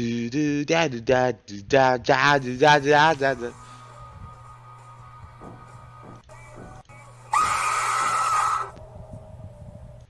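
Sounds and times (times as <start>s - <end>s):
loud harsh shriek: 7.3s - 8.7s.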